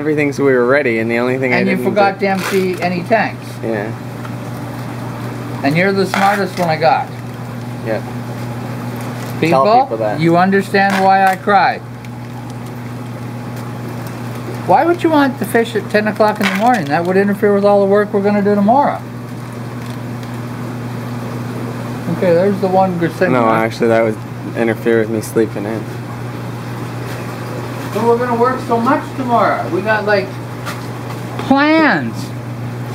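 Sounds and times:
low equipment hum: 0.0 - 32.9.

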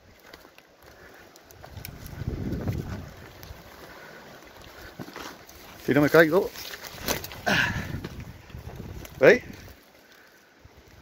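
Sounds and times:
faint ticks: 0.2 - 3.6
wind buffeting microphone: 1.6 - 3.8, 7.4 - 9.8.

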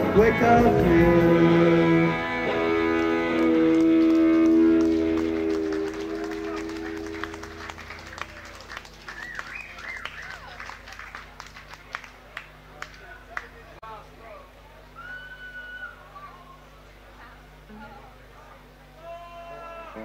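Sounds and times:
band chord ringing: 0.0 - 8.2
audience calls: 2.8 - 13.2
audience clapping: 2.9 - 13.8.

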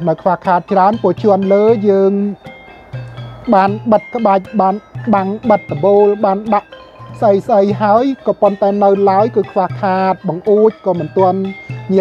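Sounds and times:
man speaking: 0.0 - 2.5, 3.5 - 12.0
quiet background music: 0.0 - 12.0.

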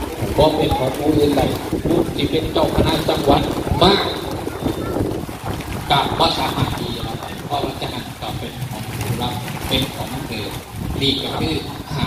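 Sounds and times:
man speaking through microphone: 0.0 - 12.0
wind rumble on microphone: 0.0 - 12.0.

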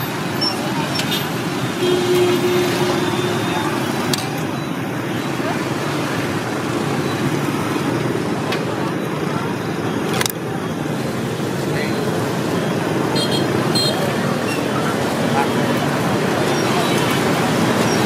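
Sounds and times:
street traffic noise: 0.0 - 18.0.

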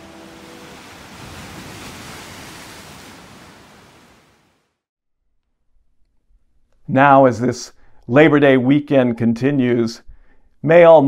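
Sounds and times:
ocean surf washing over rocks: 0.0 - 4.6.

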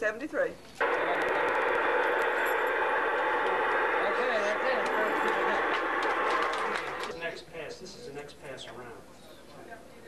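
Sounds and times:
radio static hiss: 0.8 - 7.1.

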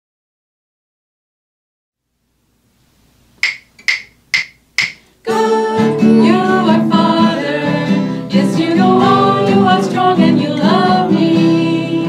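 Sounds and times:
wooden rhythm sticks struck together: 3.4 - 5.2.

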